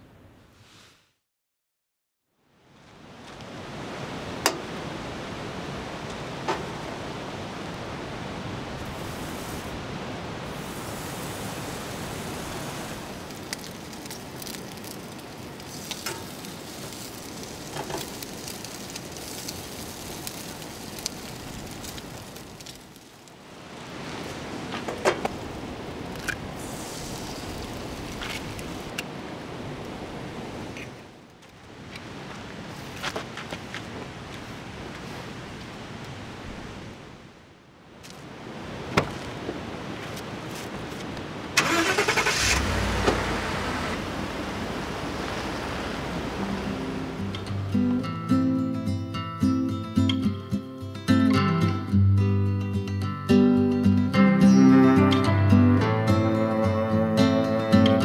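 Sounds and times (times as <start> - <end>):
bacon sizzling and popping: 12.9 - 23.3.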